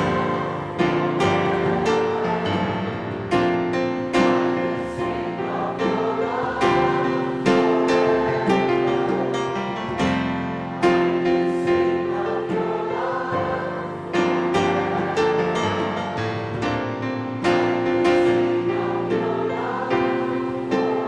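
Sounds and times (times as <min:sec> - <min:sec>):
group singing: 0:00.0 - 0:16.9, 0:17.6 - 0:21.0
piano chords: 0:00.0 - 0:21.0.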